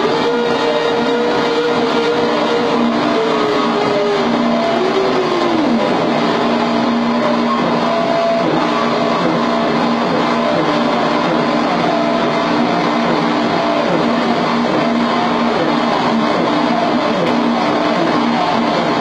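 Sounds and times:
electronic noise music: 0.0 - 19.0.

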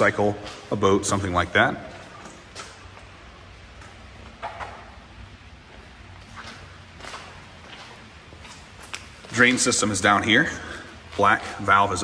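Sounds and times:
footsteps on concrete: 5.6 - 11.6.

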